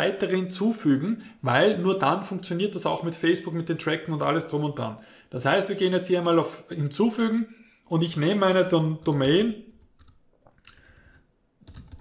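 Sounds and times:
computer keyboard keystrokes: 9.0 - 12.0.

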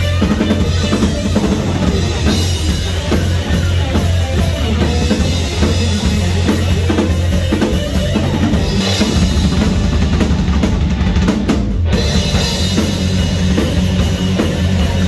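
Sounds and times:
distorted electric guitars: 0.0 - 15.0
heavy bass drum: 0.0 - 15.0
live rock band playing: 0.0 - 15.0.

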